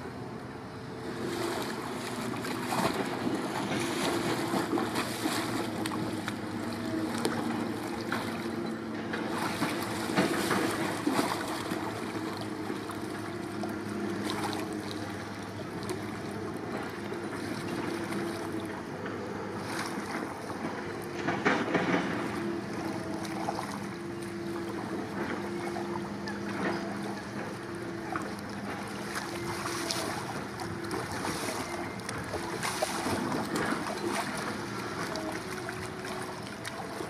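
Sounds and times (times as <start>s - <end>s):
water sloshing around boat: 0.0s - 37.0s
paddle strokes splashing: 1.0s - 37.0s.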